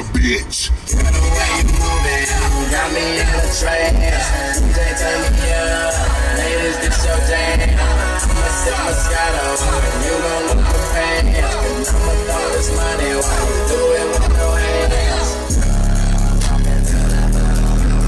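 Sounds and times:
heavy bass pulses: 0:00.0 - 0:18.0
music with vocals on car stereo: 0:00.0 - 0:18.0.

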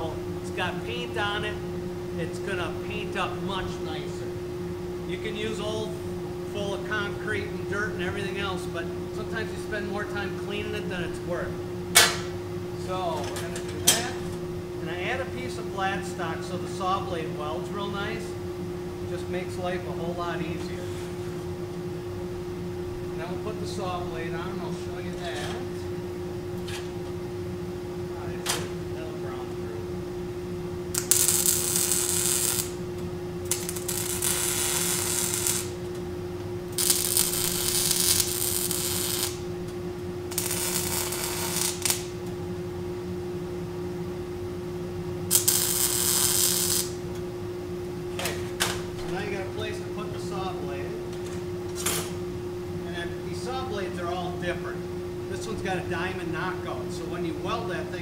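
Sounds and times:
steady hum: 0:00.0 - 0:58.0
welding arc hiss: 0:30.9 - 0:36.0, 0:36.7 - 0:42.3, 0:45.3 - 0:47.0.

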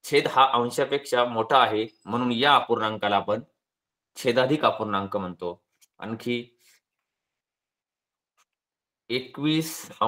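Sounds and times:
man speaking: 0:00.0 - 0:03.6, 0:04.2 - 0:06.6, 0:09.1 - 0:10.0.

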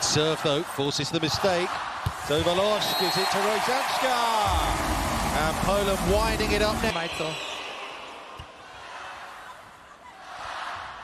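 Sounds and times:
indoor arena crowd hum: 0:00.0 - 0:11.0.

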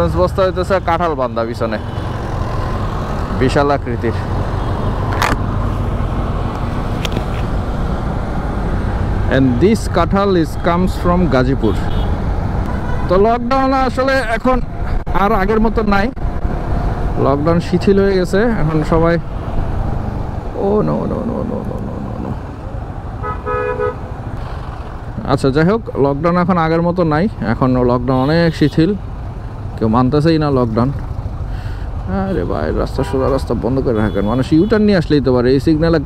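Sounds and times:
motorcycle engine rumble: 0:00.0 - 0:34.4
wind and road noise: 0:00.0 - 0:36.0
vehicle horn honking: 0:11.7 - 0:13.2, 0:23.2 - 0:24.0, 0:32.3 - 0:34.8.

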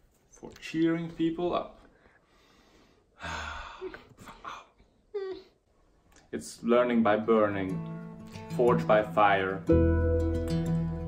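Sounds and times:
man breathing loudly: 0:02.1 - 0:04.1.

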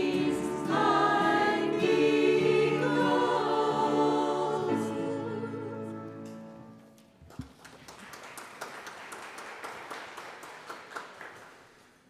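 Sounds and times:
congregation applauding: 0:07.2 - 0:12.0.

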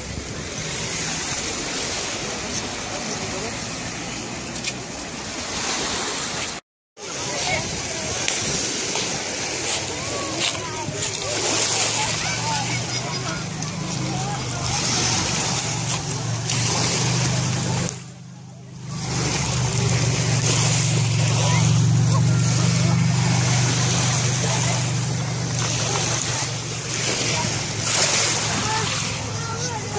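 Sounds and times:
people's voices: 0:00.0 - 0:05.6, 0:07.0 - 0:29.9
waves washing over pebbles: 0:00.0 - 0:29.9.

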